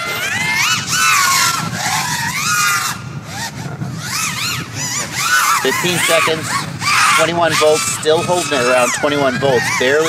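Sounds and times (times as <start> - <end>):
quadcopter motors whining: 0.0 - 10.0.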